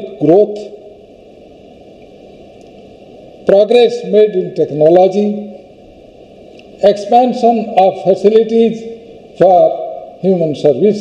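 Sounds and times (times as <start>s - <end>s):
low background hiss and hum: 0.0s - 11.0s.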